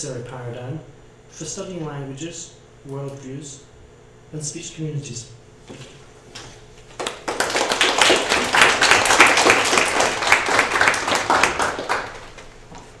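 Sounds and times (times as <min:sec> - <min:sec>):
audience applause: 0:07.0 - 0:12.5.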